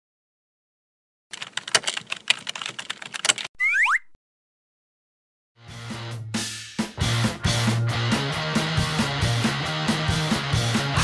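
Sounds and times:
keyboard key clicks: 1.4 - 3.5.

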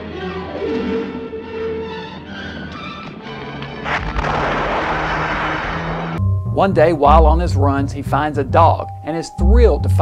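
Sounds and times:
fire flaring up with a blast: 3.8 - 6.2
dense rushing noise of fire: 3.9 - 6.2.

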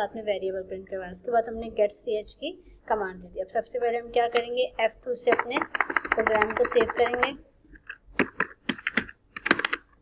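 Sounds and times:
keyboard typing: 4.2 - 10.0.

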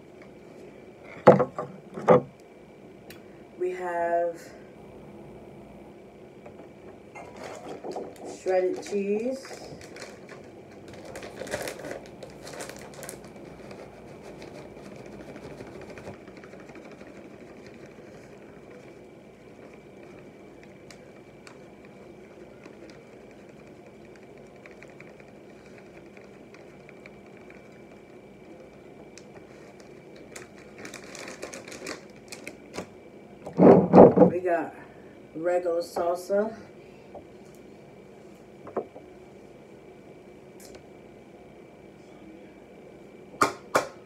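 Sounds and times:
faint steady hum: 0.0 - 44.0
plastic bag crinkling: 7.2 - 32.9.

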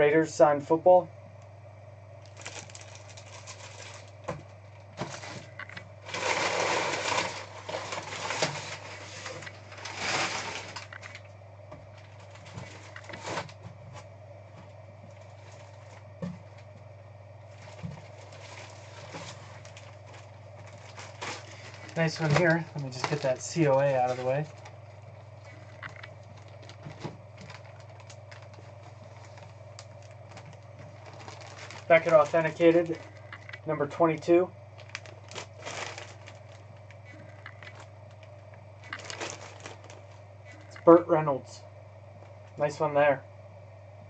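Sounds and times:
low room hum: 0.0 - 44.0
plastic bag crinkling: 2.2 - 11.3, 11.9 - 13.7, 15.0 - 16.7, 17.4 - 40.9.

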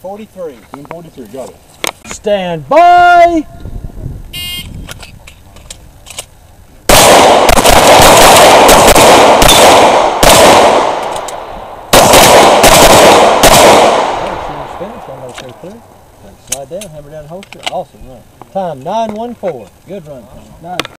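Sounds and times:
handgun shots: 6.9 - 14.4.

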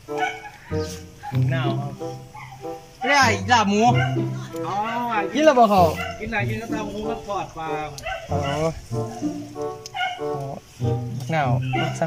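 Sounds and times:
background music: 0.0 - 12.0
people talking: 1.4 - 2.0, 3.0 - 8.8, 10.4 - 12.0.

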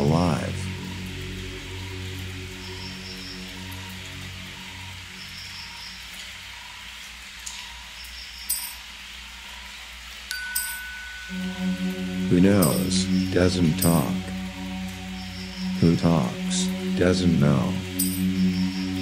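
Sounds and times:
low drone tones: 0.0 - 7.0, 10.4 - 19.0
high chime notes: 10.3 - 19.0.

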